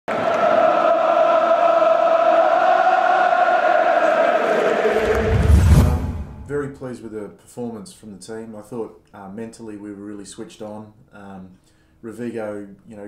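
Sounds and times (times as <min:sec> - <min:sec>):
voices chanting a long note: 0:00.1 - 0:06.0
deep rumble: 0:04.9 - 0:06.7.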